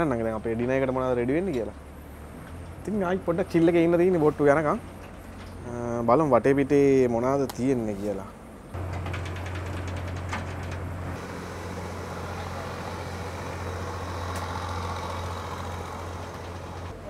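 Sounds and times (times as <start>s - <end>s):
boat engine humming: 8.3s - 17.0s.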